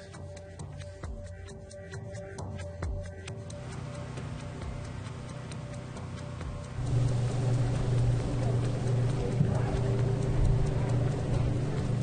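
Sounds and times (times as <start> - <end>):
faint regular ticking: 0.8 - 12.0
low droning hum: 3.6 - 12.0.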